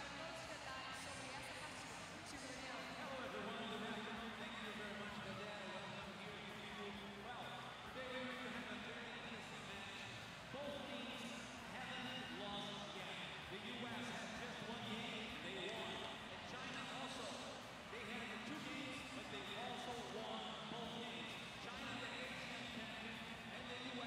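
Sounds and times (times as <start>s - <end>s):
crowd voices: 0.0s - 24.0s.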